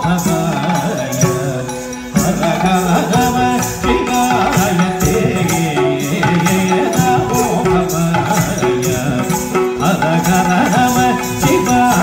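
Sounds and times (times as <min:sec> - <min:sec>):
devotional song with ornamented melody: 0:00.0 - 0:12.0
instrumental accompaniment: 0:00.0 - 0:12.0.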